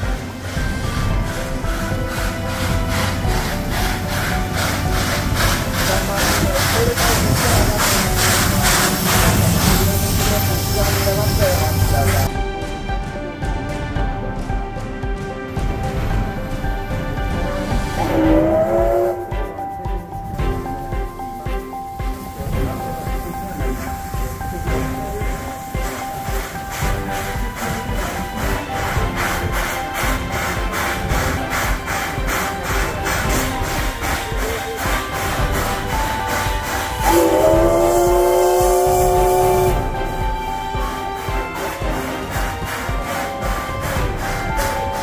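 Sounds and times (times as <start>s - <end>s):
steam locomotive whistle: 0.0s - 12.3s, 18.0s - 19.6s, 22.0s - 45.0s
background music: 0.0s - 45.0s
steam whistle blast: 18.0s - 19.4s, 28.7s - 45.0s.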